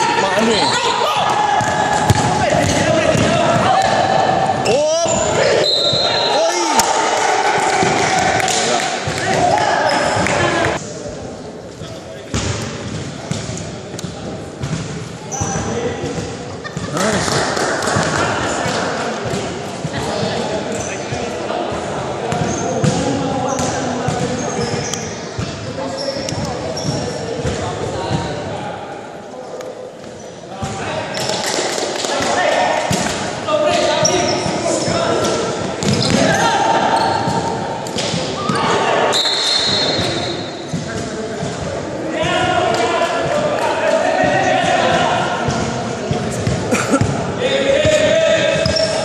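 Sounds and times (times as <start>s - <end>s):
people talking: 0.0s - 49.0s.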